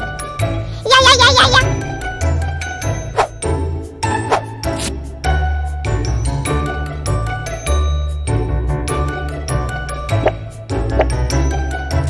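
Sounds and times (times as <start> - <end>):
cheerful music with bell notes: 0.0 - 4.2, 5.3 - 12.0.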